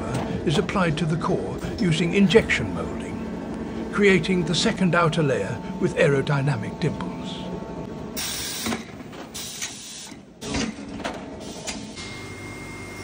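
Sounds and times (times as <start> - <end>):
steady high whine: 0.0 - 8.9.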